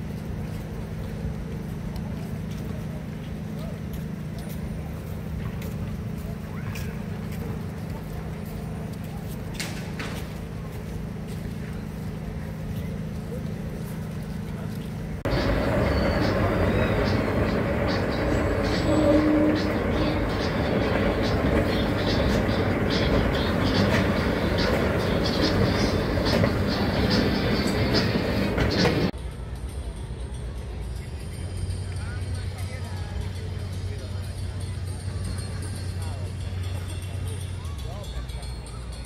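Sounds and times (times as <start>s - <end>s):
voices: 0.3s - 39.0s
escalator rattling and clicking: 15.2s - 29.2s.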